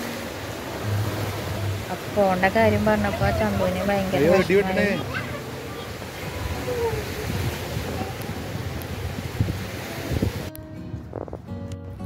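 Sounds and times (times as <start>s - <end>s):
surf washing on beach: 0.0s - 10.6s
wind on microphone: 0.4s - 12.0s.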